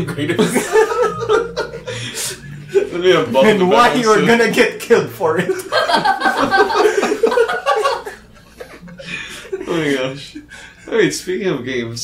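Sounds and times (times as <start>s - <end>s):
people laughing: 0.0s - 4.3s, 5.2s - 11.0s.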